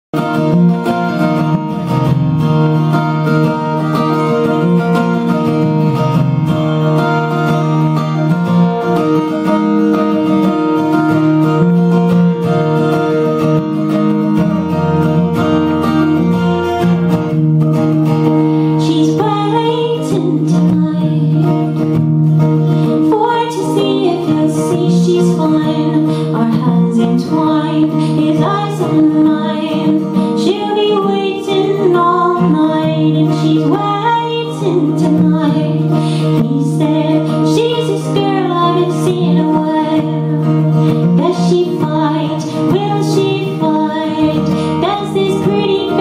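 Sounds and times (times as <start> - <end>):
acoustic guitar chords: 0.1 - 46.0.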